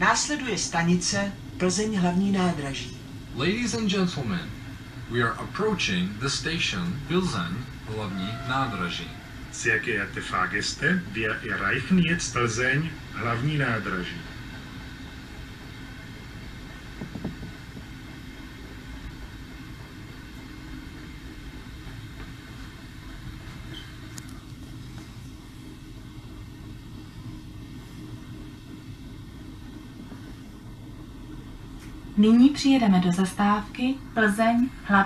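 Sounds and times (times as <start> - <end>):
train wheels rumbling on track: 0.0 - 35.0.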